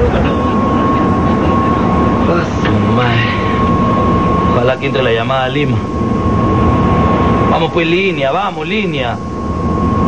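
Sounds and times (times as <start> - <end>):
loud street traffic: 0.0 - 5.2
steady high tone: 0.0 - 10.0.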